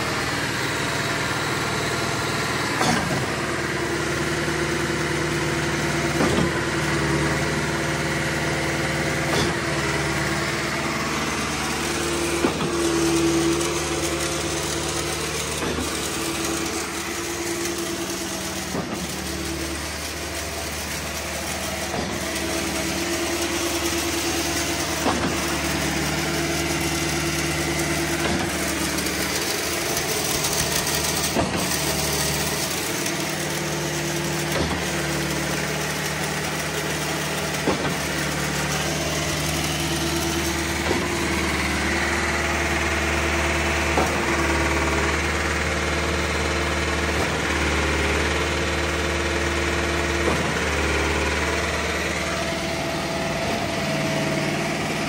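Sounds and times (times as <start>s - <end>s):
concrete pump engine running: 0.0s - 55.0s.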